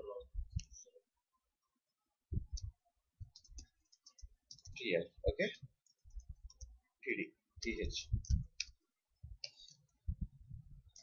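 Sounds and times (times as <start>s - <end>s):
computer keyboard keys clicking: 3.3s - 4.8s.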